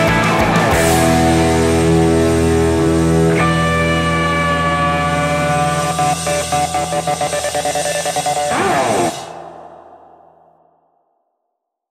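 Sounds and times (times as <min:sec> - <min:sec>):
electric guitar picked: 0:00.0 - 0:10.8.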